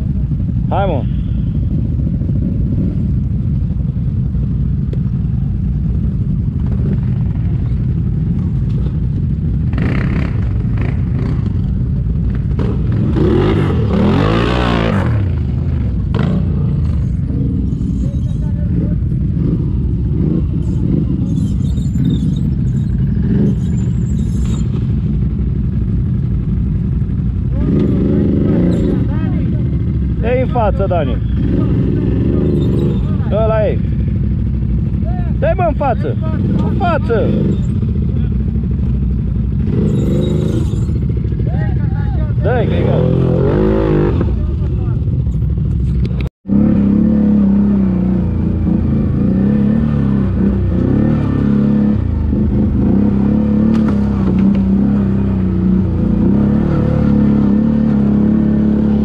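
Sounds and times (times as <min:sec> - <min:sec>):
atv engine revving: 0:00.0 - 0:59.0
atv engines running: 0:00.0 - 0:59.0.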